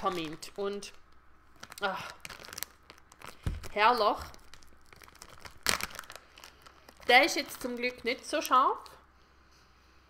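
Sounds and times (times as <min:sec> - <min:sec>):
plastic packaging crinkling: 0:00.0 - 0:09.0.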